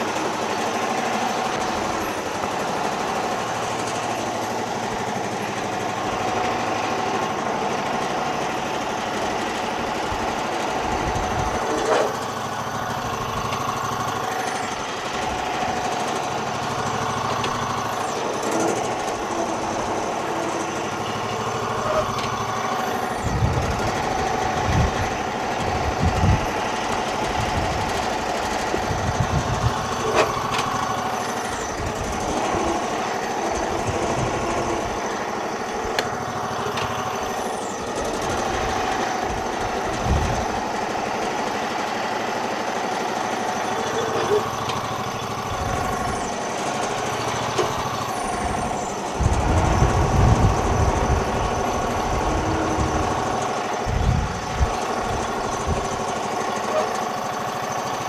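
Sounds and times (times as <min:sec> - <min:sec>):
garden tractor engine running: 0:00.0 - 0:58.0.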